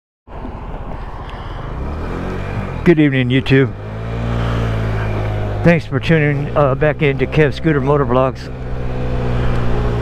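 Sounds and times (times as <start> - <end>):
wind and road noise: 0.3 - 10.0
scooter engine pulling away: 1.5 - 10.0.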